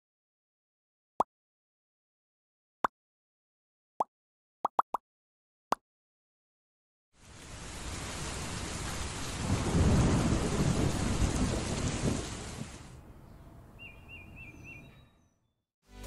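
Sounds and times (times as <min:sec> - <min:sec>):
heavy rain: 0:07.2 - 0:13.0
rumble of thunder: 0:07.7 - 0:13.0.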